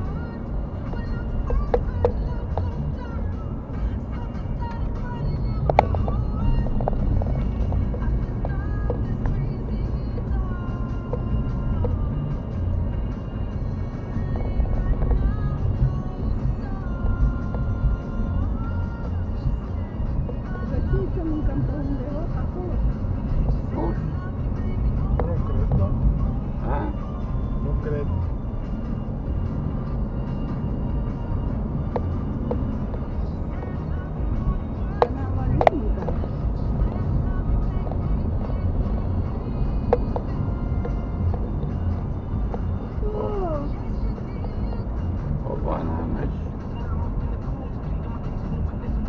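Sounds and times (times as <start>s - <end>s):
car road and engine rumble: 0.0s - 49.0s.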